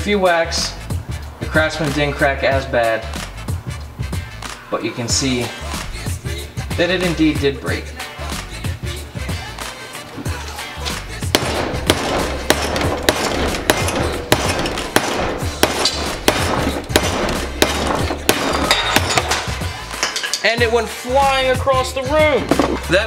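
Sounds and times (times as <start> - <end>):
background music with beat: 0.0 - 23.0.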